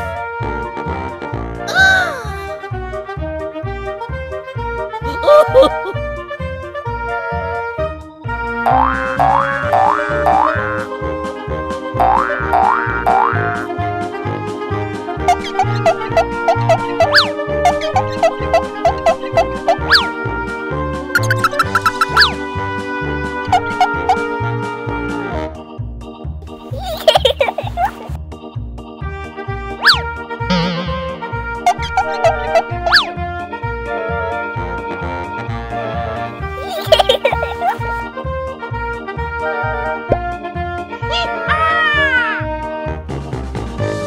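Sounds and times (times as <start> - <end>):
playful children's music: 0.0 - 44.0
cartoon pitch glide effect: 5.1 - 5.9, 8.7 - 10.8, 15.3 - 20.1, 21.2 - 22.4, 29.8 - 33.1
warbling tone: 29.8 - 33.1.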